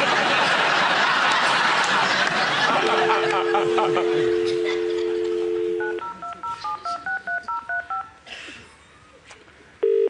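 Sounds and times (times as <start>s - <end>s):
telephone dial tone: 2.9s - 8.0s
telephone keypad beeps: 3.0s - 8.1s.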